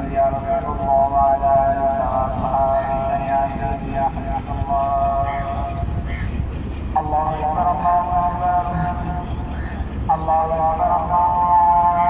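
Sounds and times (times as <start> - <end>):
diesel locomotive engine running: 0.0 - 12.0.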